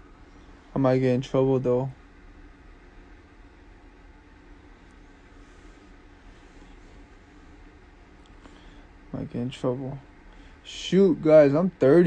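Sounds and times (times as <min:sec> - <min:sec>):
low hum of room tone: 0:00.0 - 0:12.0.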